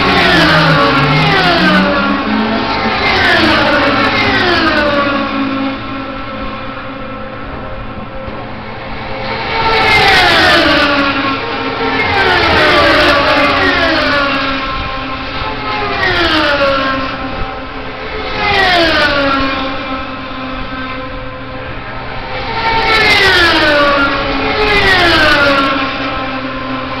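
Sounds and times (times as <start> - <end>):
race cars passing at full speed: 0.0 - 27.0.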